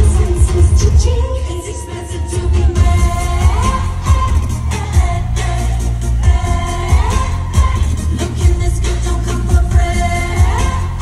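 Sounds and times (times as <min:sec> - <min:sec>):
person singing: 0:00.0 - 0:11.0
heavy electronic bass beat: 0:02.7 - 0:11.0.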